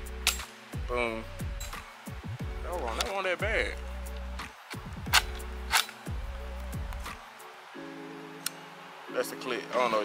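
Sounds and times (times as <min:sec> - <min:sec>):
background music: 0:00.0 - 0:10.0
gun trigger clicks: 0:04.1 - 0:06.1.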